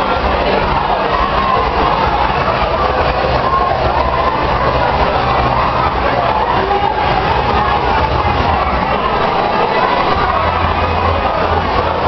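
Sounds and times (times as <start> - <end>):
crowd hubbub in hall: 0.0 - 12.0.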